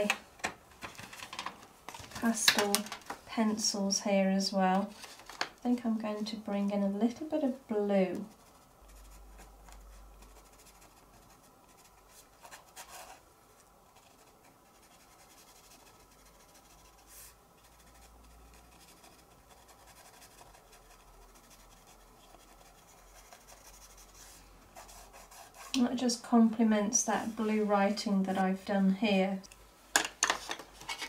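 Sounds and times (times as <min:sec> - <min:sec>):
pencil scratching on card: 0:08.2 - 0:13.2, 0:14.0 - 0:25.8.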